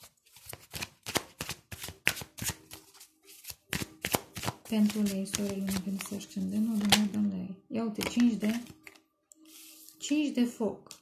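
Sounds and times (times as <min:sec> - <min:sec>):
cards being shuffled: 0:00.2 - 0:07.2, 0:08.0 - 0:10.0.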